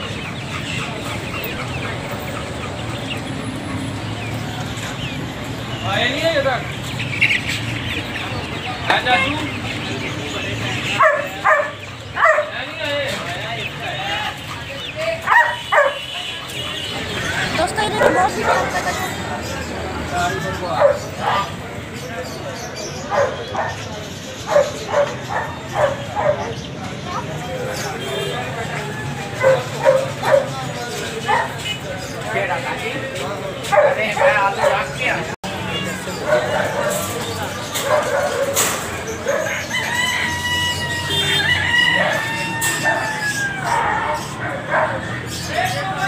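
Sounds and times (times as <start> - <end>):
people's voices: 0.0 - 46.0
puppy yapping: 11.0 - 12.6, 15.2 - 16.1, 29.4 - 30.6, 33.6 - 34.9, 36.2 - 40.2
rooster crowing: 39.6 - 44.3.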